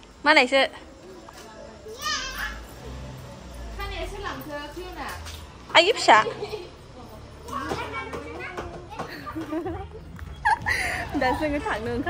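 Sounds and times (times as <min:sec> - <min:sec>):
women talking: 0:00.2 - 0:02.1, 0:03.6 - 0:07.9, 0:09.4 - 0:12.0
small child talking: 0:01.9 - 0:02.7.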